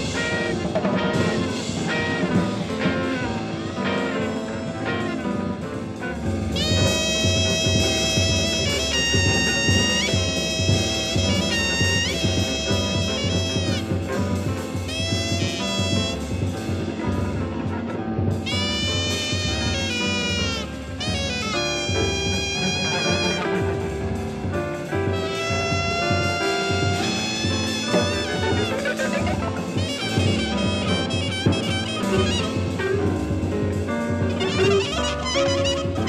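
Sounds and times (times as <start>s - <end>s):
horn sliding in pitch: 0.0s - 17.1s, 18.5s - 36.0s
drums: 0.0s - 36.0s
free jazz ensemble: 0.0s - 36.0s
nasal wind instrument wailing: 0.0s - 36.0s.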